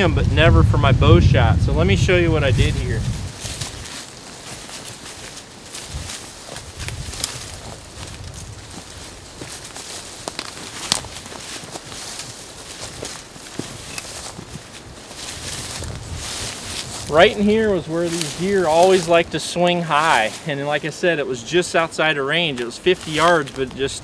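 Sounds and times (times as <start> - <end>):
footsteps in dry leaves: 2.1 - 24.0
twigs cracking: 2.6 - 19.3, 22.5 - 23.9.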